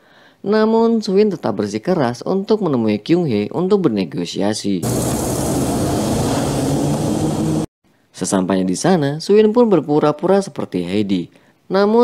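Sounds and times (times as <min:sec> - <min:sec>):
car engine at speed: 0:04.8 - 0:07.7
road and tyre noise: 0:04.8 - 0:07.7.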